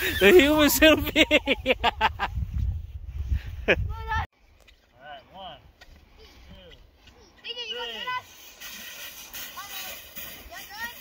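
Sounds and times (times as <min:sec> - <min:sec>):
sled sliding on snow: 0:07.5 - 0:11.0.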